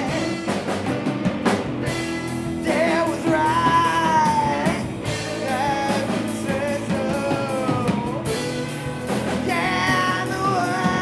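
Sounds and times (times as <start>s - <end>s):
lead vocal singing: 0.0s - 1.2s, 1.8s - 11.0s
live rock band playing: 0.0s - 11.0s.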